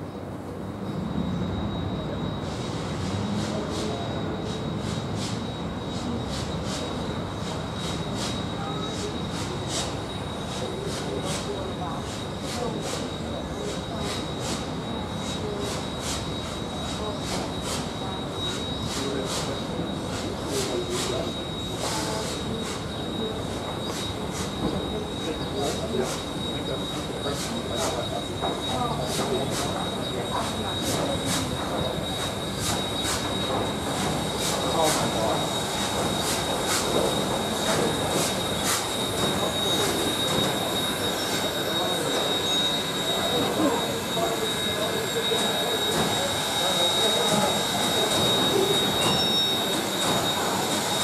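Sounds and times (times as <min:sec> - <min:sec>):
wheels squealing on rails: 0:00.8 - 0:51.0
steam hissing: 0:02.4 - 0:51.0.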